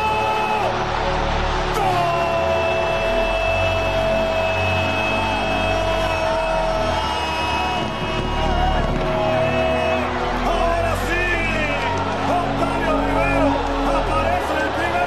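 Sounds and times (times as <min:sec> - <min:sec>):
stadium crowd noise: 0:00.0 - 0:15.0
commentator shouting goal: 0:10.0 - 0:15.0.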